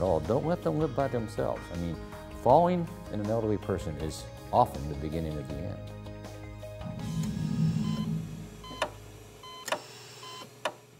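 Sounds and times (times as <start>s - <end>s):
music sting: 6.6s - 9.2s
electronic monitor beeps: 6.8s - 9.7s.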